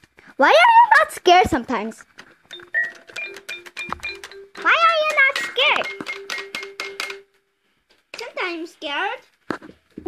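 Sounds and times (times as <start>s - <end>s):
toy keyboard keys clicking: 2.5s - 7.2s.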